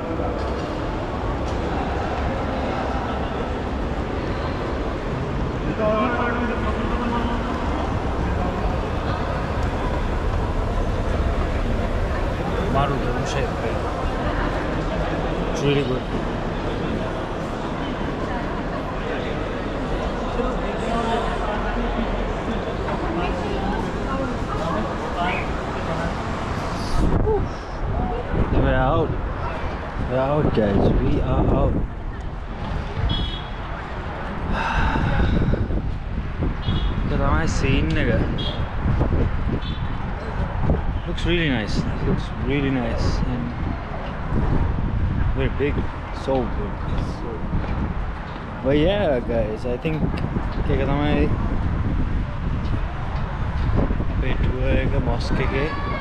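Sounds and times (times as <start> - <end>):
indistinct voices: 0.0 - 47.6
wind rumbling on microphone: 21.7 - 56.0.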